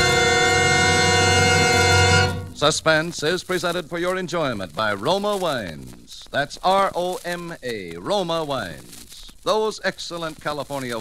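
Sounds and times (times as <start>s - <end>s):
orchestral chord sting: 0.0s - 2.9s.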